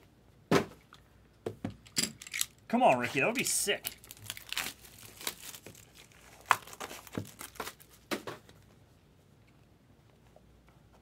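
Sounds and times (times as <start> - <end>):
card packaging crinkling: 3.3 - 8.1.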